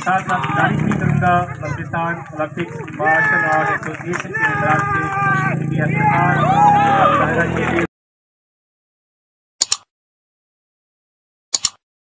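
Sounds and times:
loud people's voices: 0.0s - 7.9s.

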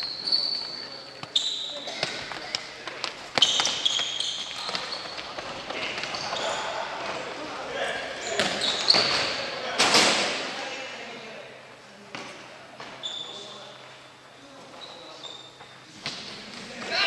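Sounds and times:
sneakers squeaking: 0.0s - 10.4s, 12.2s - 17.0s.

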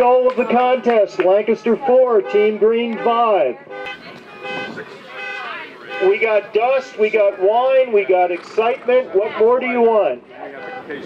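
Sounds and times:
faint distant voices: 0.0s - 11.0s
faint car horn honking: 2.0s - 7.9s, 10.5s - 11.0s.

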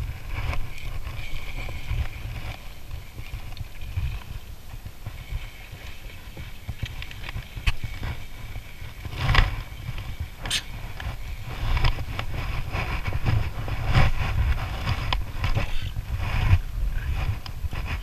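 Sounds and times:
wind rumbling on microphone: 0.0s - 18.0s.

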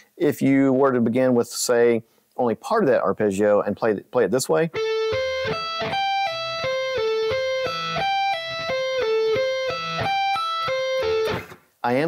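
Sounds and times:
electric guitar arpeggio: 4.8s - 11.6s.

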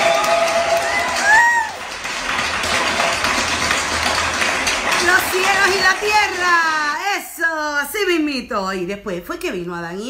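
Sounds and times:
rising-and-falling whoop: 0.0s - 1.9s
cheering: 0.0s - 3.5s
applause: 0.0s - 7.0s.

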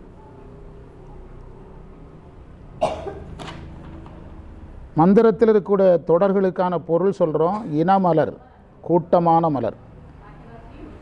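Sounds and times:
man coughing: 2.8s - 3.3s, 7.5s - 7.8s.

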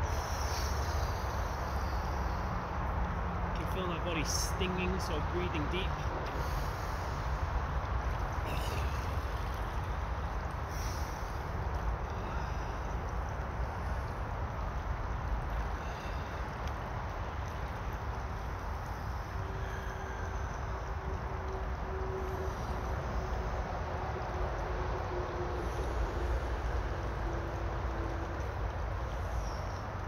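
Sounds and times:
river running over stones: 3.4s - 20.9s.

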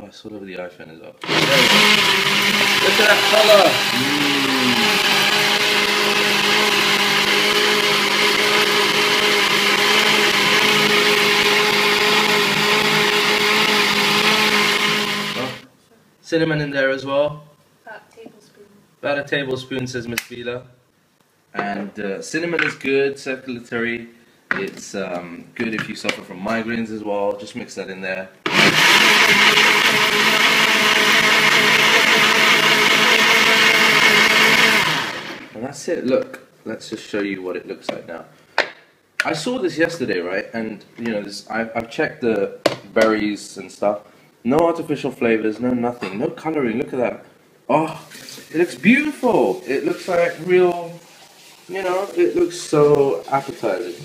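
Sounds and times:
blender motor humming: 1.2s - 15.6s, 28.5s - 35.5s
liquid churning in blender: 1.2s - 15.6s, 28.5s - 35.4s.

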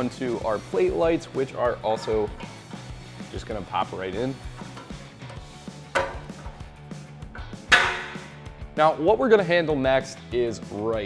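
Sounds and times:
quiet background music: 0.0s - 11.0s
plastic light snapping into metal: 4.8s - 6.5s, 7.4s - 8.3s.

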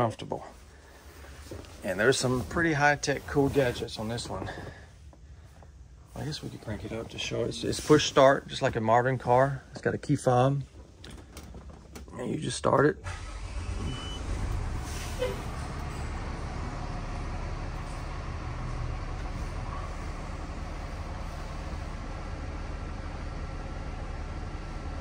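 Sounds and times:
diesel engine starting and idling: 13.0s - 25.0s.

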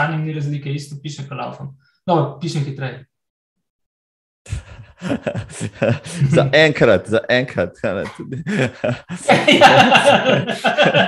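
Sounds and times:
man's breathy laugh: 4.5s - 6.4s, 8.0s - 11.0s
man's voice: 4.5s - 11.0s.

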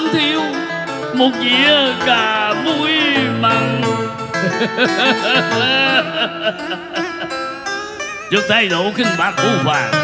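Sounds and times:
plucked string instrument melody: 0.0s - 10.0s
person singing: 1.2s - 6.4s.

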